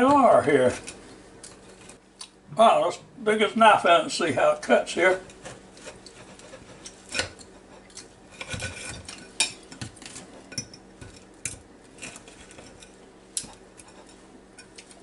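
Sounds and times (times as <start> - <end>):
knife and fork scraping plate: 5.3 - 11.2, 12.0 - 15.0.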